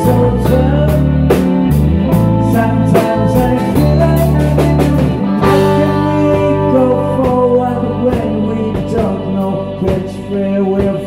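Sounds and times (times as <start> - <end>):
drum kit keeping a steady beat: 0.0 - 11.0
electric bass: 0.0 - 11.0
electric guitars: 0.0 - 11.0.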